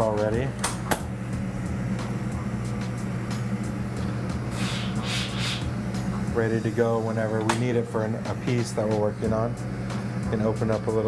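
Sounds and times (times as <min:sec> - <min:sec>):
torch burning with hum: 0:00.0 - 0:11.0
breath blown into tube: 0:04.5 - 0:05.7.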